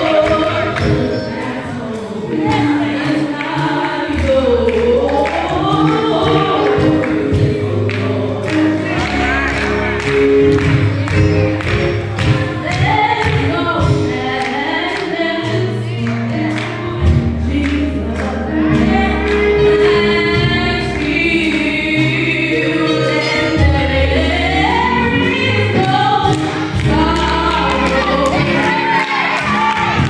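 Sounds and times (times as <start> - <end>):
instrumental accompaniment with bass: 0.0 - 30.0
woman singing gospel: 0.0 - 30.0.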